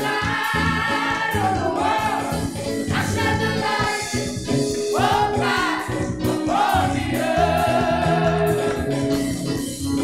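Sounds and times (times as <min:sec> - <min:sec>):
vocal group singing gospel: 0:00.0 - 0:09.6
electric keyboard: 0:00.0 - 0:10.0.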